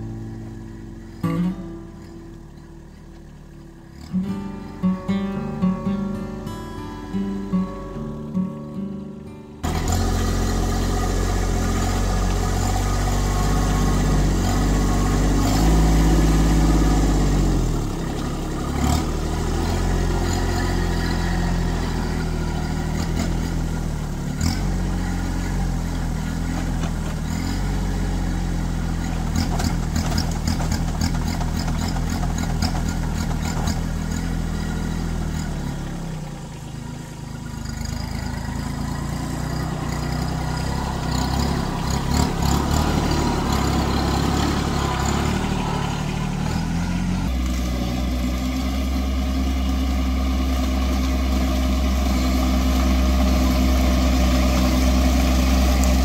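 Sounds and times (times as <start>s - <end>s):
tractor diesel engine running: 0.0s - 56.0s
rapid clatter: 28.8s - 34.5s.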